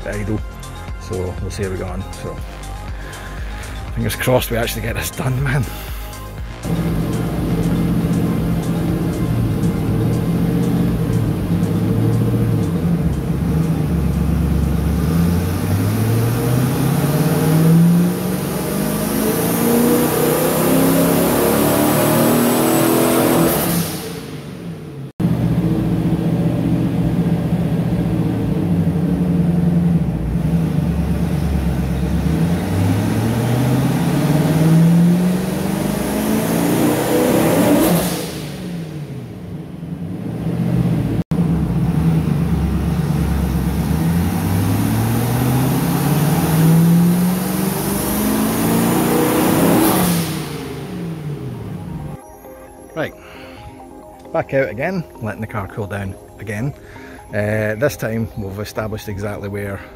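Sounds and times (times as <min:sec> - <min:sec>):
car engine revving under load: 0:06.5 - 0:52.2.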